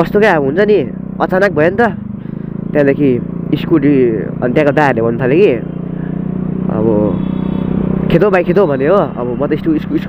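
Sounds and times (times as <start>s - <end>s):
scooter engine running: 0.0s - 10.0s.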